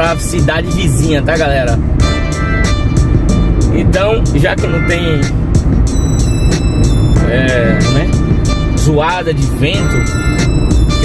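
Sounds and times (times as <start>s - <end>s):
music playing: 0.0s - 11.0s
wind and road noise in car: 0.0s - 11.0s.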